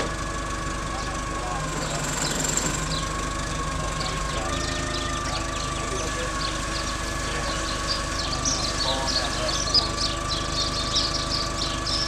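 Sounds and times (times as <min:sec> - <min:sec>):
engine idling with high whine: 0:00.0 - 0:12.0
small birds chirping: 0:00.0 - 0:12.0.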